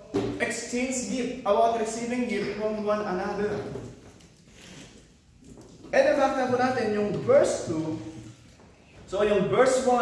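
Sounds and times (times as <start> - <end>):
man speaking: 0.0 - 4.0, 5.9 - 8.4, 9.0 - 10.0.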